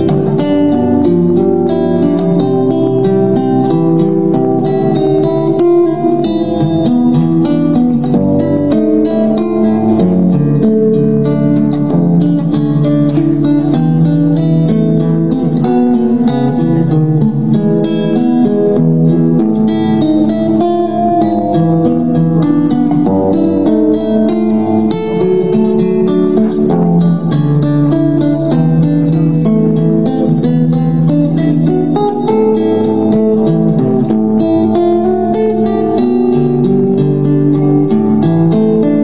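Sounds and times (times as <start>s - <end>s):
fingerstyle acoustic guitar: 0.0s - 39.0s.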